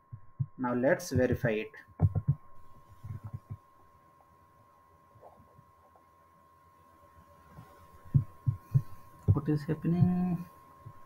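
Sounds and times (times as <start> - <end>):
low thumps: 0.0 - 3.6, 8.1 - 10.3
faint high-pitched electrical tone: 0.0 - 11.0.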